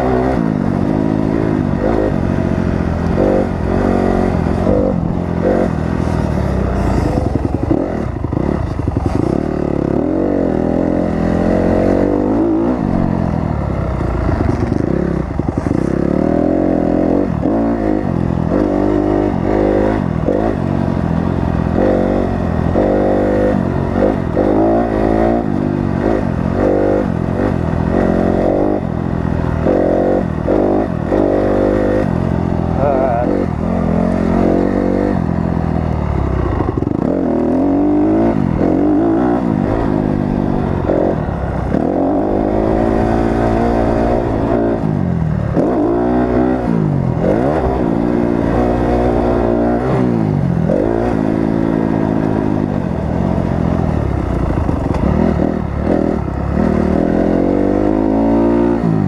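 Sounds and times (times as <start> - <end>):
motocross bike engine revving: 0.0 - 59.0.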